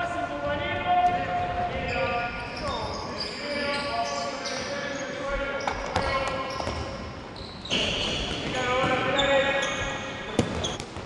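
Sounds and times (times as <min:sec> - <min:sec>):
sneakers squeaking: 0:00.9 - 0:11.0.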